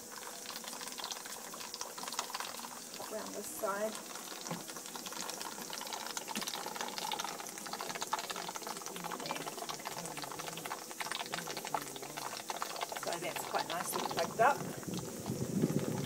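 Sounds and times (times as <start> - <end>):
water boiling with bubbling: 0.0 - 16.0.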